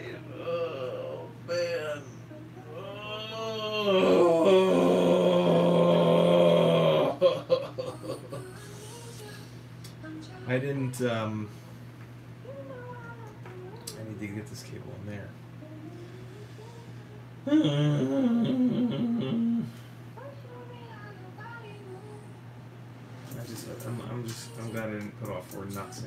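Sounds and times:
man humming a tune: 0.0 - 9.2, 17.4 - 19.9
man groaning in frustration: 3.0 - 7.3.

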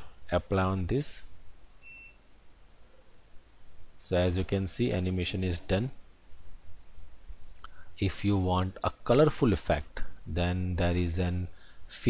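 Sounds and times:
background hiss: 0.0 - 12.0
short high beep: 1.8 - 2.2
person speaking: 4.0 - 6.0, 7.5 - 12.0.

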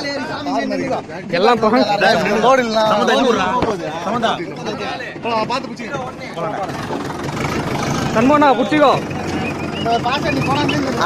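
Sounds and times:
tractor diesel engine idling: 0.0 - 11.0
voices talking: 0.0 - 11.0.

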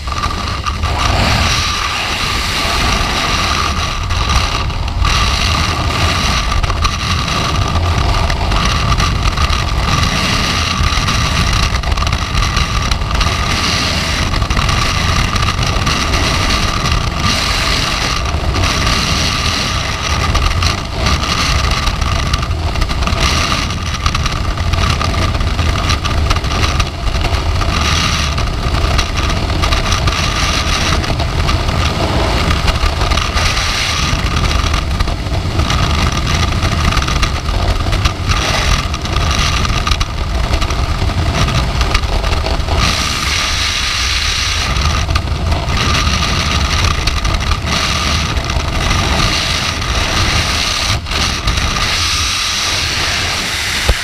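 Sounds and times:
freefall wind rushing: 0.0 - 54.0.

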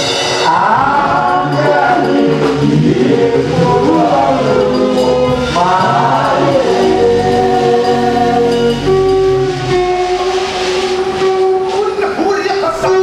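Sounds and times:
man singing amplified: 0.0 - 9.8
choir singing: 0.0 - 11.2.

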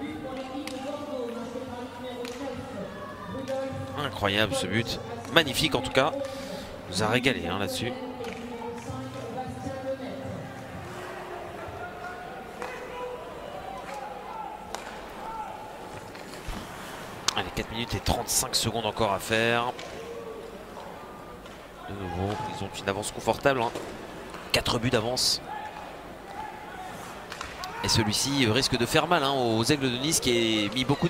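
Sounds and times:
crowd voices: 0.0 - 31.0
hockey sticks clacking puck: 13.8 - 15.2, 15.9 - 16.6, 23.4 - 24.8, 27.0 - 28.0.

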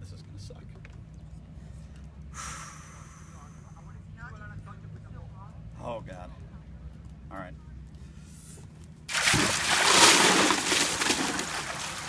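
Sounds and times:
water splashing: 9.1 - 12.0.

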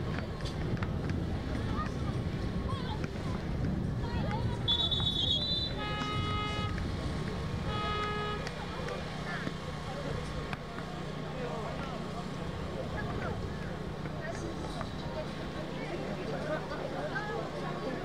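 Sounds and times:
murmur of voices: 0.0 - 18.0
scoreboard buzzer blasts: 5.0 - 6.8.

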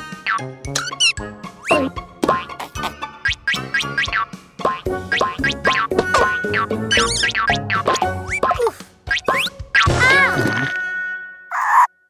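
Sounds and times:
playful cartoon music: 0.0 - 12.0.

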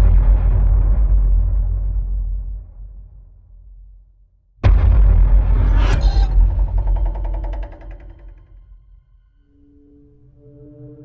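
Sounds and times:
low deep boom rumble: 0.0 - 8.6.

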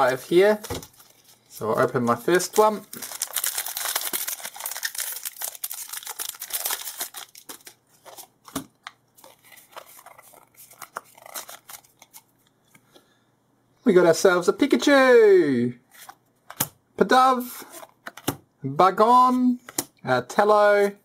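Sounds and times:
trading cards rustling: 0.0 - 12.8
foil wrapper tearing and crinkling: 2.9 - 7.8.

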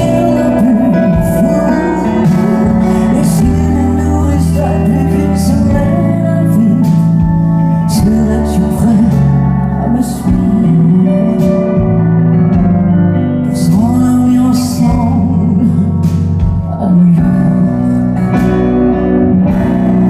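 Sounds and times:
band accompaniment: 0.0 - 20.0.

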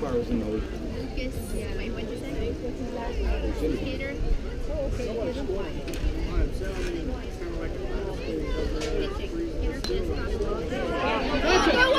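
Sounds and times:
spectators chattering: 0.0 - 11.9.

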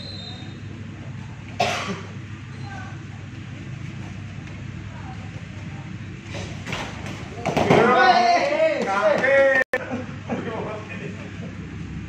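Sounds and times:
loud shouting voices: 7.4 - 9.8.

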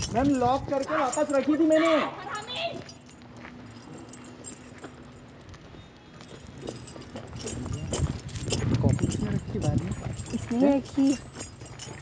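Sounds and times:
people arguing: 0.2 - 2.9.

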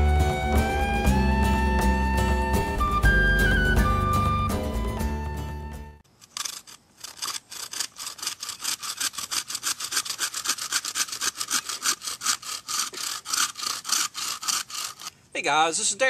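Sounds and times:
bow saw cutting wood: 6.1 - 15.2.

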